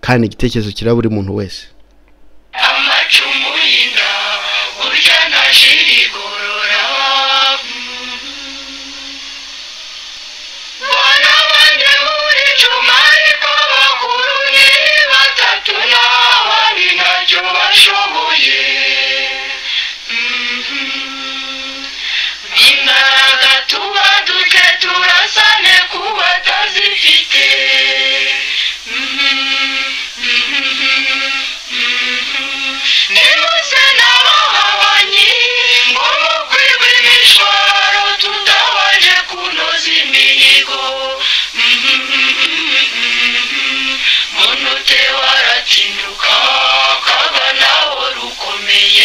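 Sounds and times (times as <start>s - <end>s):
voices singing long notes: 2.5s - 49.0s.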